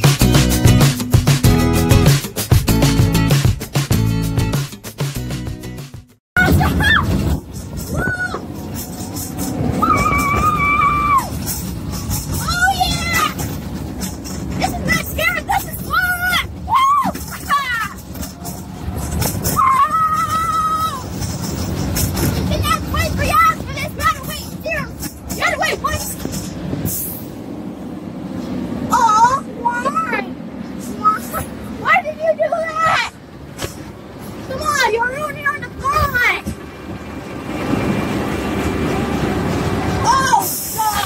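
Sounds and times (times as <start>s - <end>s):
wind rush: 6.4s - 32.2s, 35.3s - 41.0s
roller coaster rumble: 6.4s - 41.0s
child calling out: 40.0s - 41.0s.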